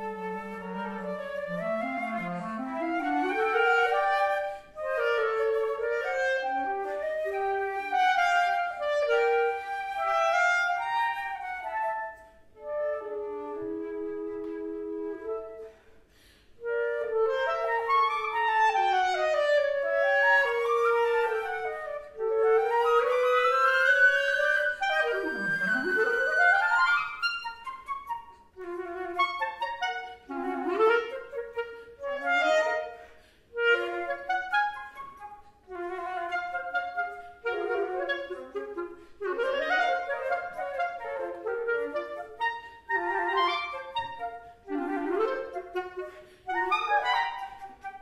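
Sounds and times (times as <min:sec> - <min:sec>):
clarinet playing: 0:00.0 - 0:48.0
flute playing: 0:00.0 - 0:48.0.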